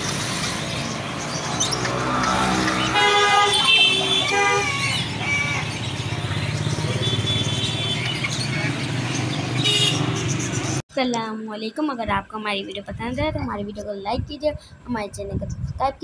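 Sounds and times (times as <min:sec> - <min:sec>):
vehicle engines running: 0:00.0 - 0:10.8
car horn: 0:02.8 - 0:05.0, 0:06.9 - 0:08.2, 0:09.6 - 0:10.1.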